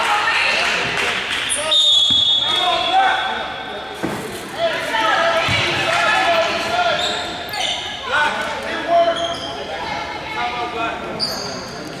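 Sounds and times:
voices calling out in a gym: 0.0 - 12.0
sneaker squeaks on hardwood: 11.2 - 11.8.

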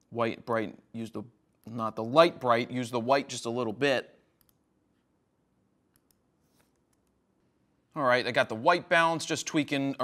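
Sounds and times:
faint computer mouse clicks: 5.9 - 7.2.

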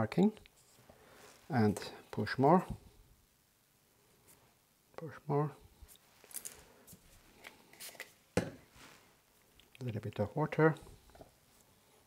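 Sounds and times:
faint scrapes and rustles of hands: 0.4 - 2.1, 5.7 - 10.2.

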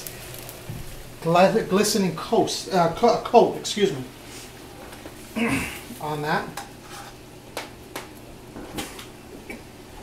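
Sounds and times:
simmering sauce hiss: 0.0 - 7.2.

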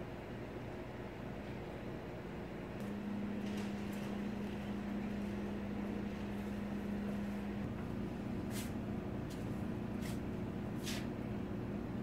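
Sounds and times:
machine electrical hum and fan: 0.0 - 12.0.

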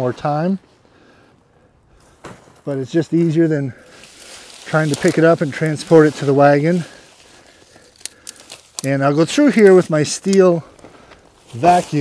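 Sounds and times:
dry leaves crackling and rustling: 2.9 - 12.0.

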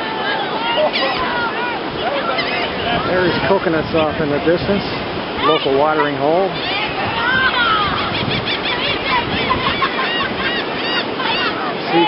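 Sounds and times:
gulls screaming: 0.0 - 3.5, 5.4 - 12.0
surf and wind: 0.0 - 12.0.

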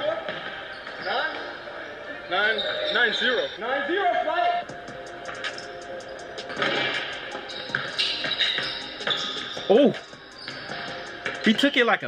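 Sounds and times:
background music with steady beat: 3.5 - 12.0.

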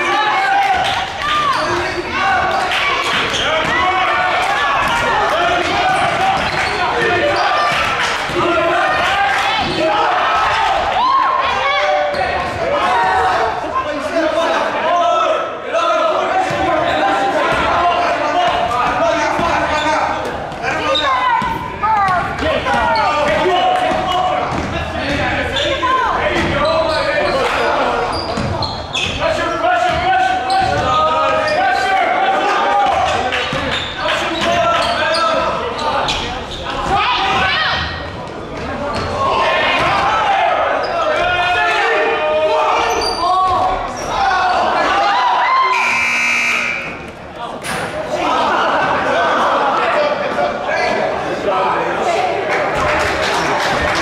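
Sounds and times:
voices echoing in hall: 0.0 - 54.0
scoreboard buzzer: 45.7 - 47.0.

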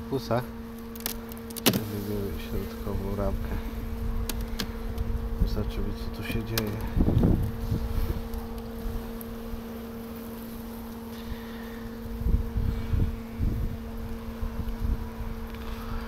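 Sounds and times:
honeybees humming: 0.0 - 16.0
wind buffeting microphone: 2.2 - 9.7, 11.9 - 16.0.

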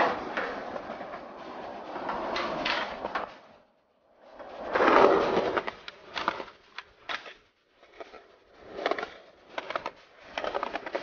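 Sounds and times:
skateboard clacking: 0.0 - 3.5
skateboard wheels rolling on pavement: 0.0 - 6.7.

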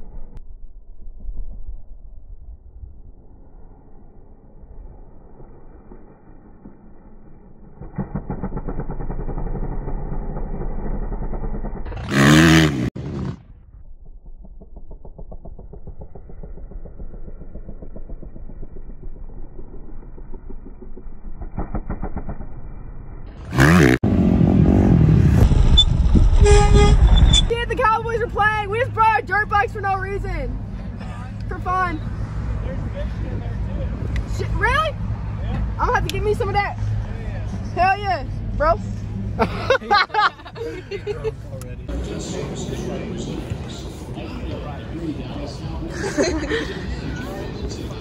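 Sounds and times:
dirt bike engine revving: 7.8 - 13.6, 23.4 - 27.4.

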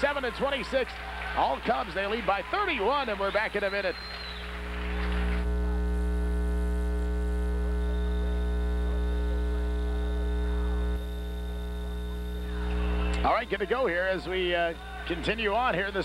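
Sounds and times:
loud electrical mains hum: 0.0 - 16.0.

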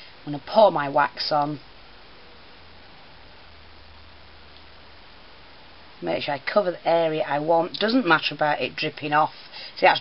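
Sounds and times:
steady hiss: 0.0 - 10.0
low hum: 1.3 - 6.0.

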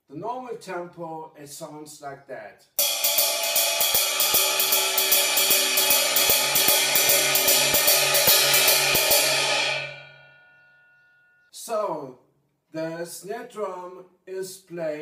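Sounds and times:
ride cymbal shuffle pattern: 2.8 - 10.4.

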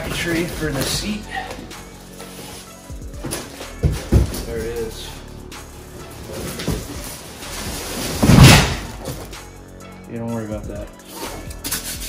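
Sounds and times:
loud slam: 8.2 - 9.0.

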